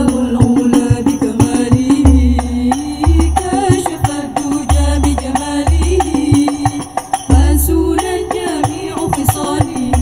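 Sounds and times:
women singing in unison: 0.0s - 10.0s.

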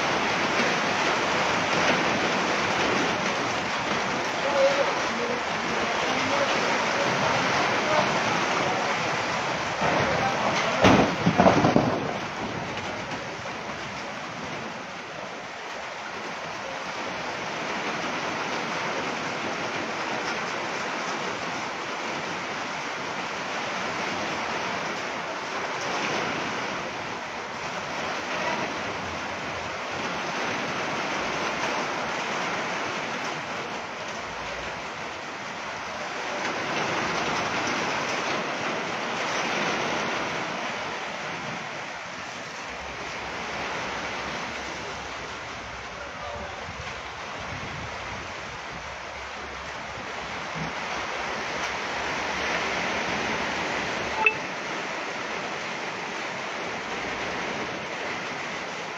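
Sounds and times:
heavy rain on metal roofs: 0.0s - 58.9s.

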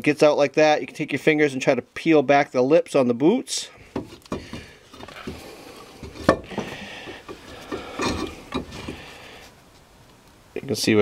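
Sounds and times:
rubbing on metal parts: 3.8s - 9.6s
light metal clicks and knocks: 6.0s - 9.0s.

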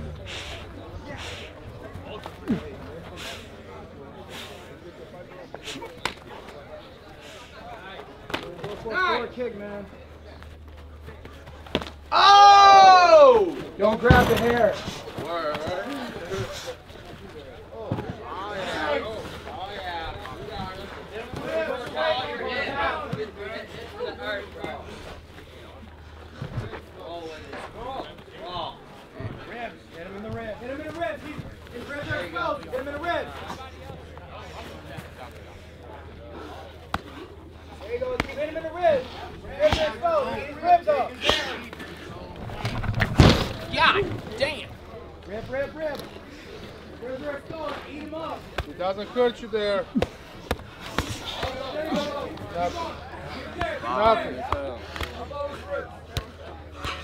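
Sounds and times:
onlookers talking and calling out: 0.0s - 57.0s
onlookers shouting: 12.1s - 13.6s
dull thuds: 42.5s - 44.4s
heavy slam: 42.6s - 43.8s.

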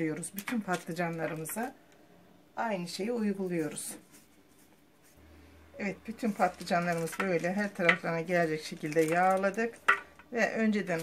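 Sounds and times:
pastry brush strokes: 3.2s - 5.3s, 6.0s - 8.6s.

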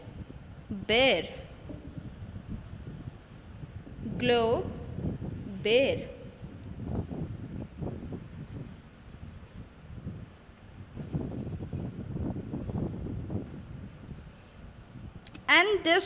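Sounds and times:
low uneven rumbling: 0.0s - 15.2s.

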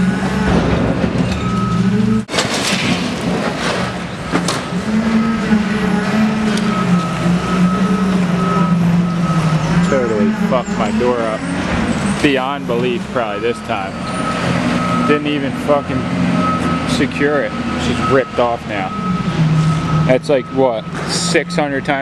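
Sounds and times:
vehicle engine running: 4.1s - 22.0s
voices: 4.9s - 19.2s, 20.0s - 22.0s.

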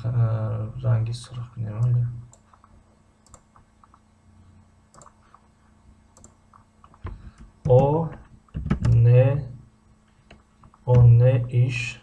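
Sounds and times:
computer mouse clicks: 1.8s - 4.0s, 4.9s - 5.5s, 6.2s - 7.5s.

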